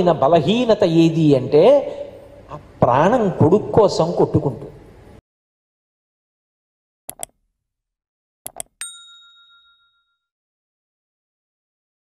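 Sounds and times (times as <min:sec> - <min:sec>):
quick double click: 0:07.1 - 0:07.4, 0:08.5 - 0:08.8
bright bell ding: 0:08.8 - 0:10.3.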